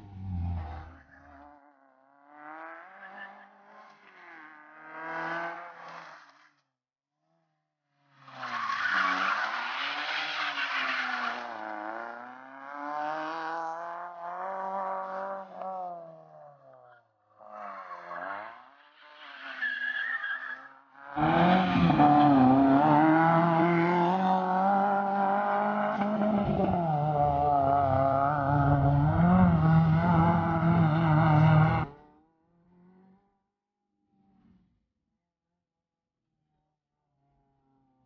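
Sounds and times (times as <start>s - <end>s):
car engine revving: 0.0s - 6.1s, 9.1s - 16.8s, 21.0s - 33.3s.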